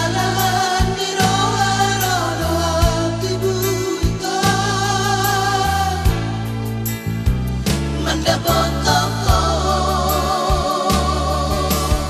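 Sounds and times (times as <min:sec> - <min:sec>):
pop band backing: 0:00.0 - 0:12.0
steady bass line: 0:00.0 - 0:12.0
drum beats: 0:07.2 - 0:08.7.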